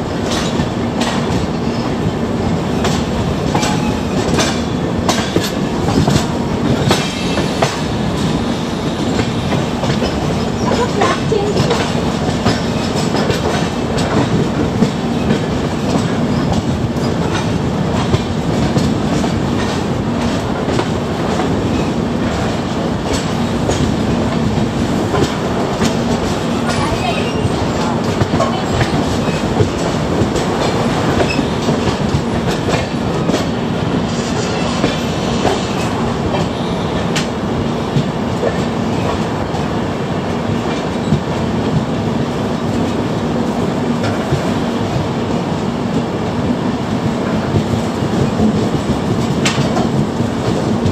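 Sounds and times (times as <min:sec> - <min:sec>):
train wheels rumbling on rails: 0:00.0 - 0:50.9
wheels clicking over rail joints: 0:02.8 - 0:07.8.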